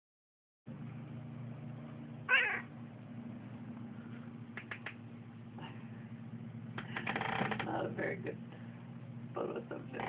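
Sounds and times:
low steady hum: 0.7s - 10.0s
cat meowing: 2.3s - 2.7s.

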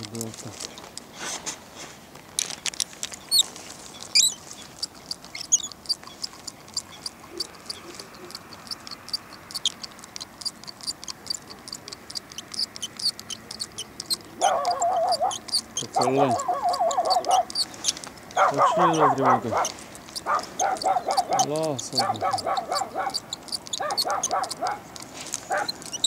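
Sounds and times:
small birds chirping: 0.0s - 1.3s, 2.6s - 26.0s
bird sweeping calls: 12.6s - 26.0s.

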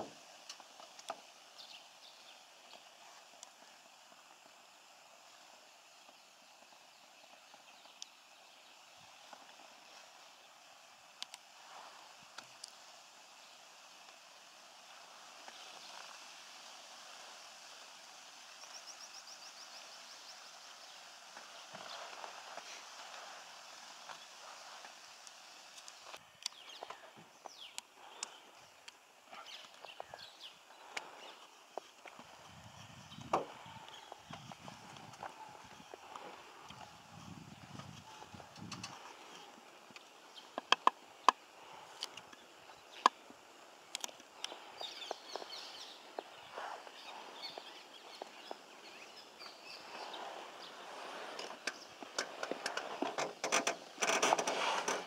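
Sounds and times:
muffled thumps and rumbles: 32.2s - 36.2s
bird chirps: 44.4s - 51.0s.

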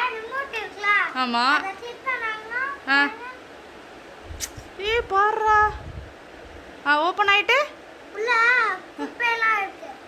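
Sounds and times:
child's high-pitched voice: 0.0s - 3.5s, 8.1s - 10.0s
sharp click: 4.4s - 4.7s.

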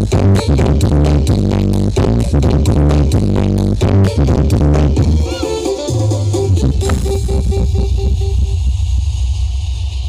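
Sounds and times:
low bass rumbling: 0.0s - 5.2s, 6.2s - 10.0s
heavy deep bass music: 0.0s - 10.0s.

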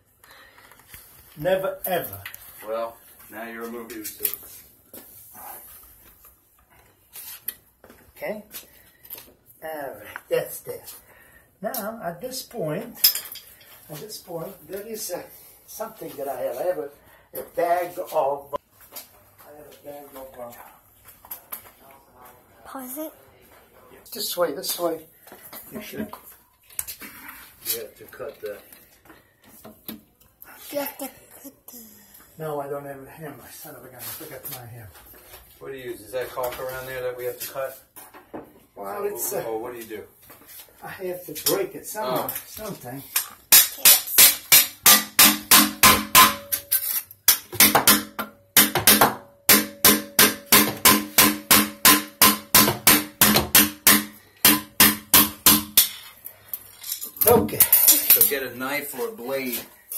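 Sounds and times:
hammer striking metal blade: 43.5s - 55.9s.

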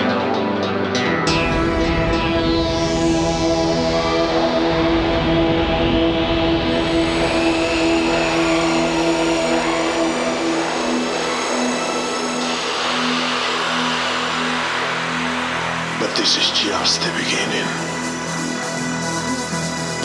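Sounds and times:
low synthesizer drone: 0.0s - 20.0s
rushing engine-like noise: 2.9s - 19.1s.

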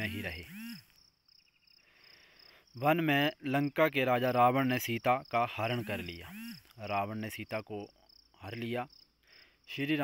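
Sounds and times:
person speaking: 0.0s - 0.8s, 2.8s - 8.9s
high-pitched pulsing chirping: 0.0s - 9.1s.

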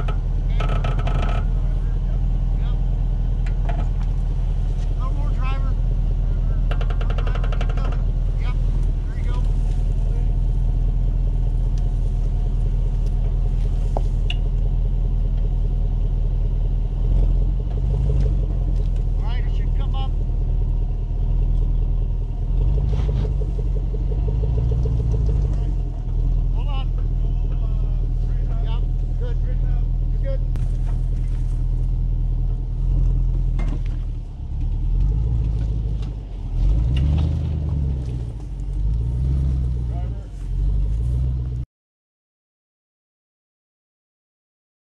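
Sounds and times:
engine rumbling at low speed: 0.0s - 41.7s.

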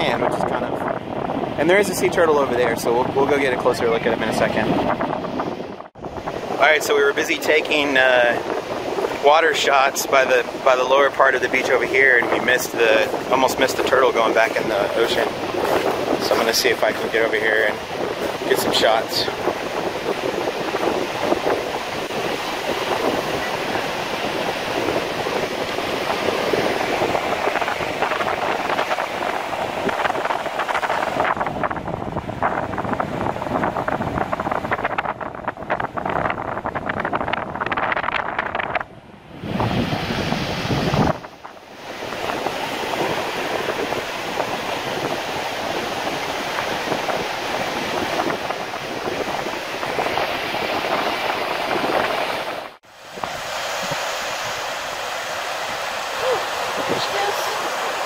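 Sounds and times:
ocean surf breaking over rocks: 0.0s - 58.0s
wind rushing on microphone: 0.0s - 58.0s.

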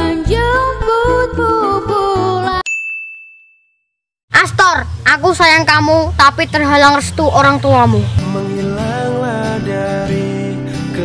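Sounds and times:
bright ding: 2.7s - 3.9s
boy's voice: 4.3s - 8.2s
song playing: 7.2s - 11.0s.

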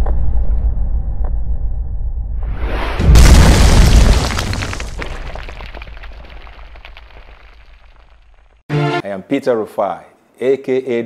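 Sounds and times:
wall smashing boom: 2.4s - 8.2s
crackling debris: 3.0s - 8.6s.

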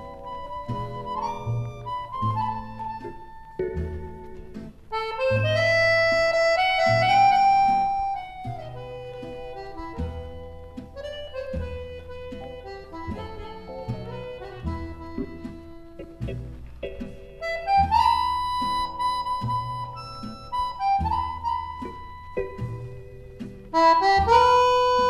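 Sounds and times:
accordion dance music: 0.0s - 25.0s
bass keeping steady beat: 0.0s - 25.0s.

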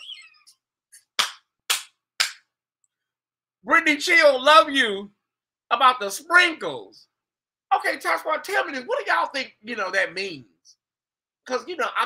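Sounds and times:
sharp hand claps: 1.0s - 2.5s.

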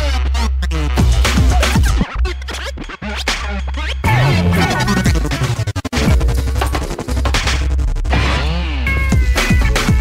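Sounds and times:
turntable scratching: 0.0s - 10.0s
heavy bass line: 3.0s - 9.2s.

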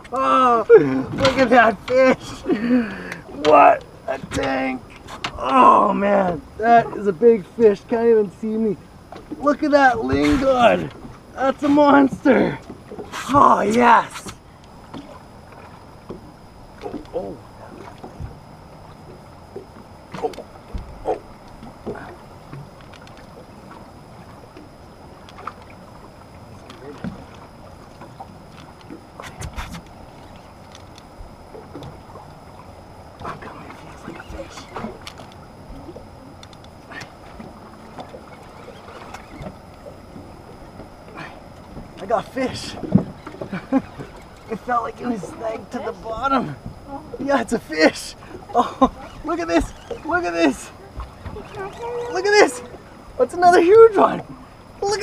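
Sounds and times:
low background noise on boat: 0.0s - 55.0s
faint clicks: 17.8s - 44.6s
faint voice: 48.5s - 52.8s.

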